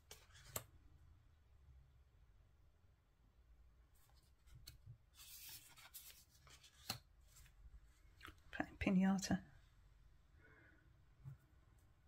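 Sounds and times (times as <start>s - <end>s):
cards sliding and rustling: 0.0s - 0.7s, 4.0s - 7.6s.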